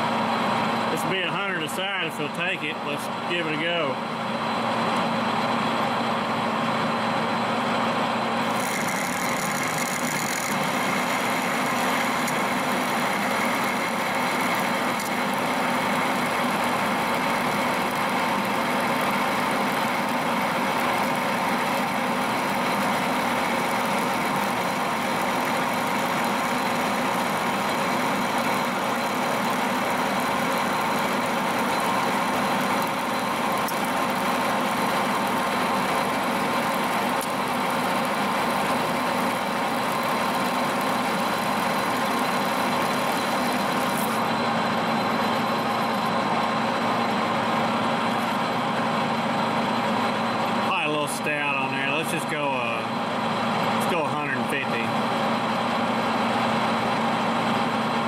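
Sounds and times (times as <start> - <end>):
metal lathe cutting steel: 0.0 - 58.0
steady whining tones: 0.1 - 57.9.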